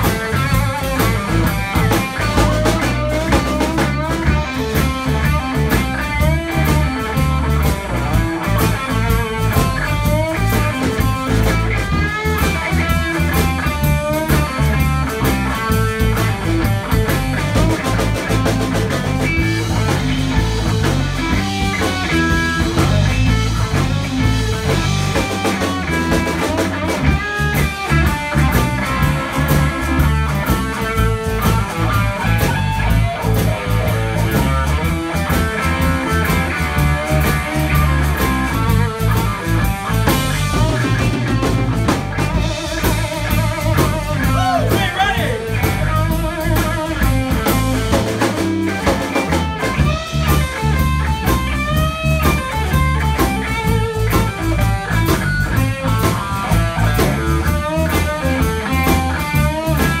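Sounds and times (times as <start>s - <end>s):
blues rock band playing: 0.0s - 60.0s
drums: 0.0s - 60.0s
electric guitar lead lines: 0.0s - 60.0s.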